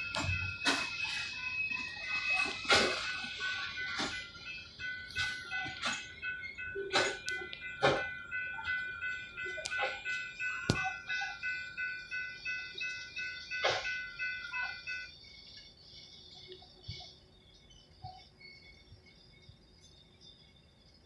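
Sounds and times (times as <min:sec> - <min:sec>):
railroad crossing bell ringing: 0:00.0 - 0:15.8.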